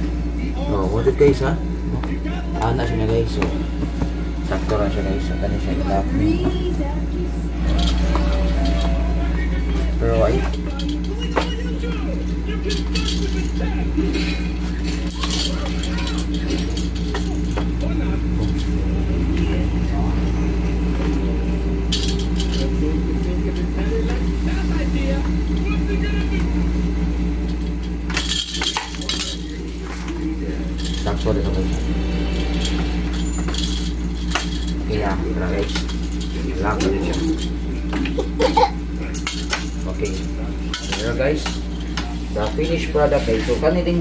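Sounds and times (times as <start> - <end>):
steady low hum: 0.0 - 44.0
parts rattling and clinking: 7.6 - 25.8, 26.5 - 44.0.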